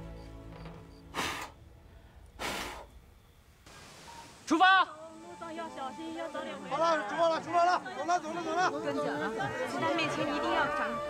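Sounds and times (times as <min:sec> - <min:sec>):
soft background music: 0:00.0 - 0:01.4, 0:05.0 - 0:11.0.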